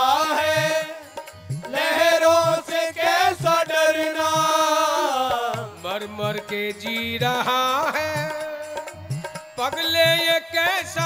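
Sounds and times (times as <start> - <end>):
harmonium: 0.0 - 11.0.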